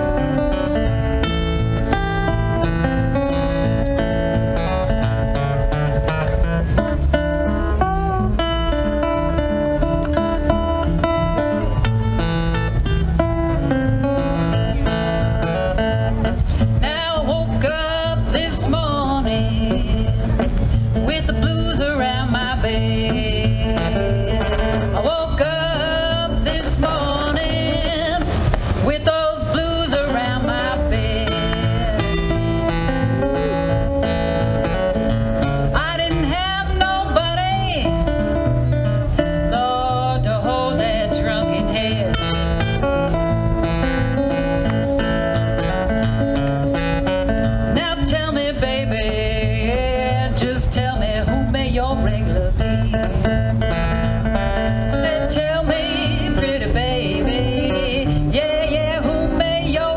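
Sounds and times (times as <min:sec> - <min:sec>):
acoustic guitar picked and strummed: 0:00.0 - 0:59.9
woman singing wordless blues yodel: 0:16.6 - 0:33.4, 0:35.0 - 0:43.2, 0:47.5 - 0:53.7, 0:54.3 - 0:59.9.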